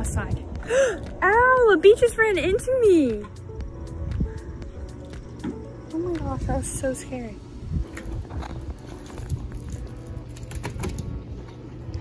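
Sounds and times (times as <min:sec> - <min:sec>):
wind rumble on microphone: 0:00.0 - 0:02.8, 0:03.6 - 0:05.3, 0:06.0 - 0:12.0.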